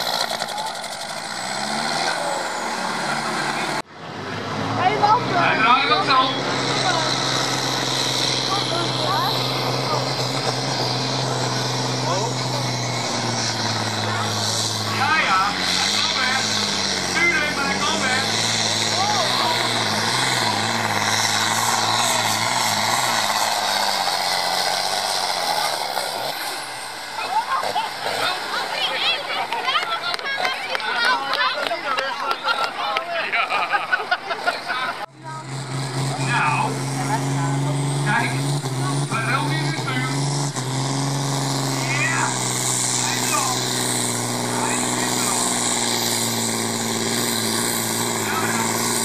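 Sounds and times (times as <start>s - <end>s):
tractor diesel engine labouring: 0.0s - 49.0s.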